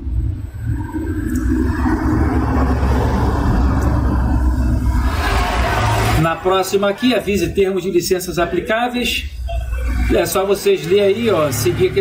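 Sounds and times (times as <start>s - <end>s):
loud low rumble: 0.0s - 6.8s
noisy hum: 0.0s - 12.0s.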